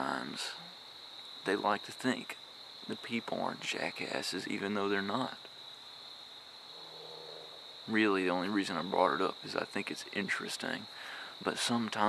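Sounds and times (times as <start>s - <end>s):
faint low hum: 0.0s - 5.6s, 6.6s - 12.0s
crickets trilling: 0.0s - 12.0s.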